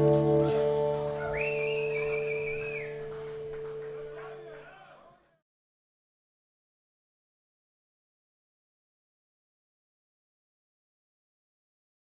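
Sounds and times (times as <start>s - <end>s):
electric guitar chord ringing: 0.0s - 4.4s
audience whistle sliding up: 1.2s - 3.2s.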